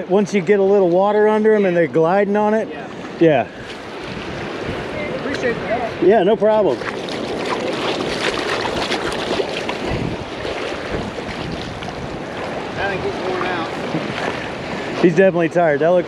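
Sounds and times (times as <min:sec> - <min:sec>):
shallow surf swirling around feet: 0:00.0 - 0:16.0
wind buffeting microphone: 0:02.8 - 0:16.0.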